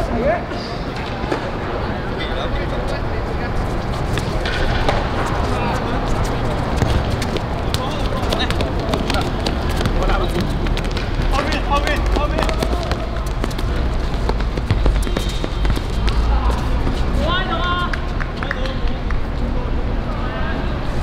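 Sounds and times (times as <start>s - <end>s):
players calling out: 4.2s - 18.3s
ball being kicked: 6.6s - 16.6s.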